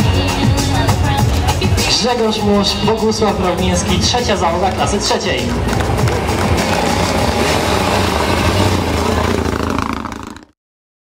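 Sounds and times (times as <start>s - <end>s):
crowd noise: 0.0s - 10.4s
car engine pulling away: 1.4s - 10.5s.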